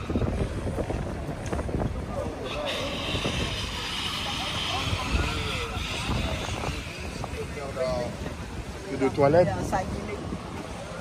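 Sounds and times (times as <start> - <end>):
crowd chatter: 0.0 - 11.0
wind on microphone: 0.0 - 11.0.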